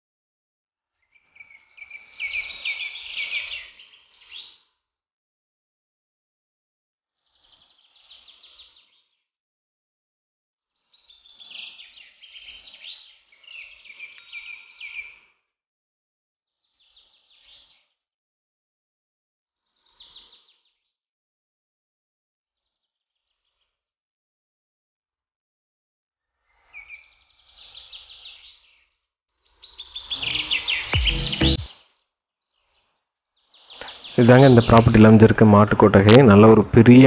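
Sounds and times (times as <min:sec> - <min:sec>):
birds chirping: 0:29.6 - 0:31.7, 0:33.6 - 0:37.0.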